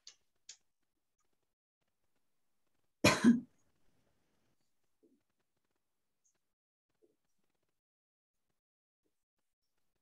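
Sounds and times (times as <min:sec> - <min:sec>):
person clearing throat: 0:03.0 - 0:03.5.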